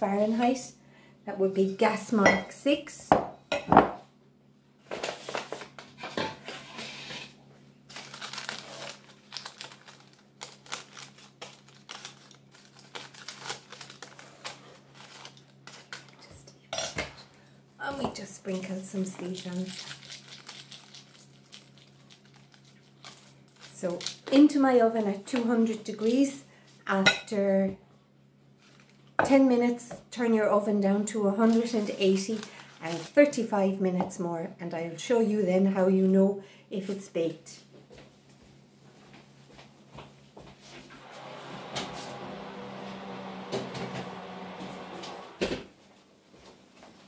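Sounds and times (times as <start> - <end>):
oven fan hum: 38.8 - 45.7
oven door shutting: 40.9 - 45.6.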